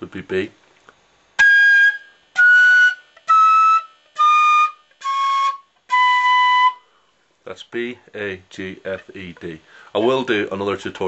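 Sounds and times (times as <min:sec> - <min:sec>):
flute playing descending scale: 0:01.4 - 0:06.9.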